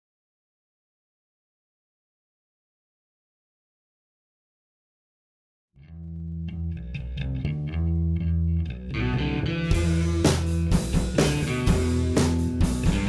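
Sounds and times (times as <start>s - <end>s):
picked guitar notes: 5.8s - 13.0s
sustained low notes: 6.0s - 13.0s
rock band with drums: 9.1s - 13.0s.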